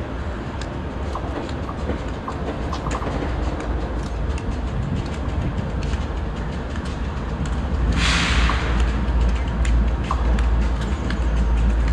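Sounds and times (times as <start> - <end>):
locomotive engine rumble: 0.0 - 11.9
train clicking on rails: 0.0 - 11.9.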